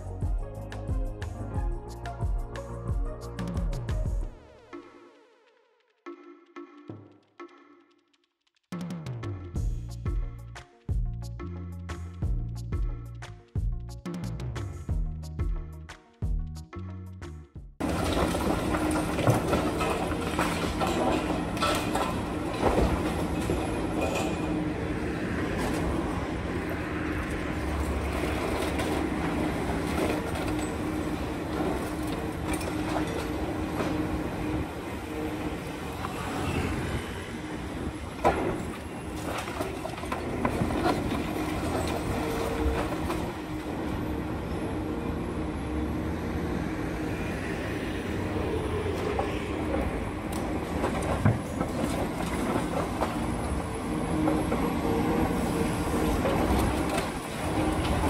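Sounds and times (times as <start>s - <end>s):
concrete and metal clanks and crunches: 17.8s - 24.7s, 29.8s - 34.1s
excavator diesel engine running: 17.8s - 47.2s, 48.1s - 58.0s.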